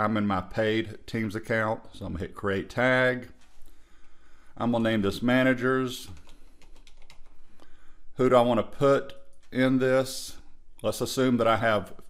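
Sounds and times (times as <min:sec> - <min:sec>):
typing on computer keyboard: 0:06.1 - 0:07.4.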